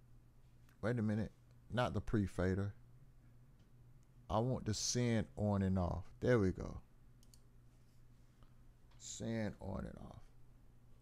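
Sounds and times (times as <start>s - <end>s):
steady low hum: 0.0s - 11.0s
computer mouse clicks: 7.2s - 7.5s.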